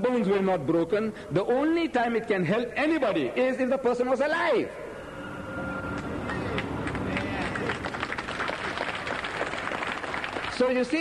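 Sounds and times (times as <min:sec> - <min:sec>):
audience clapping: 0:05.9 - 0:11.0.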